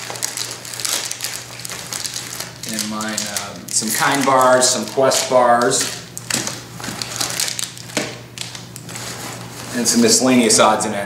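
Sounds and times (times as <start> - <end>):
rustling of fabric and wrappers: 0.0 - 10.4.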